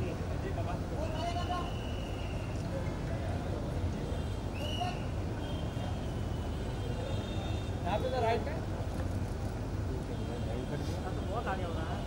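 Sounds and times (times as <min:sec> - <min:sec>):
low hum of indoor crowd: 0:00.0 - 0:12.0.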